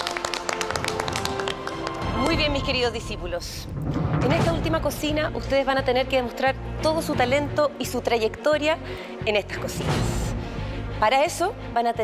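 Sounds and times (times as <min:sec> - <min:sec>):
people clapping: 0:00.0 - 0:02.8.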